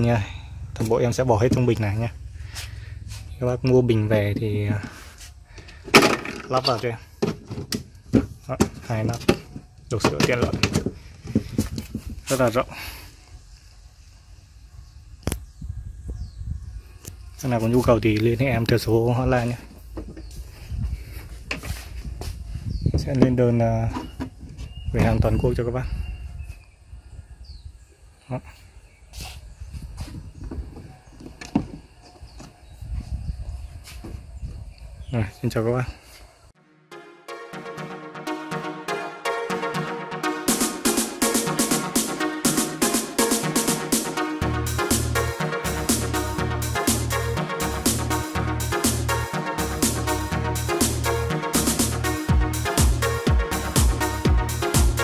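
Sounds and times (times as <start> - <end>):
low rumble: 0.0 - 4.9.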